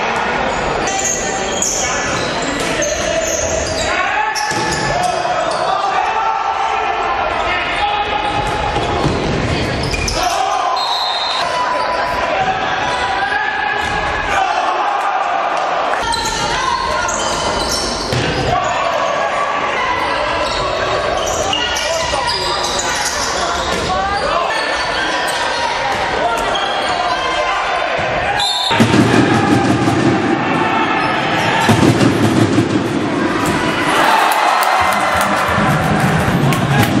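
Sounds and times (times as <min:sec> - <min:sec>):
players shouting: 0:09.8 - 0:37.0.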